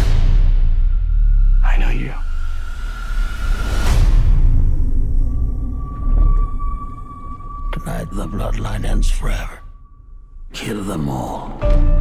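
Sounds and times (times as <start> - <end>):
deep rumbling low drone: 0.0 - 10.5.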